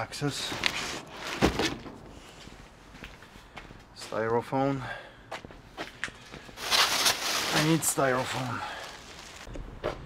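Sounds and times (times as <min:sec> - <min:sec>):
cardboard boxes rustling: 0:06.6 - 0:09.5.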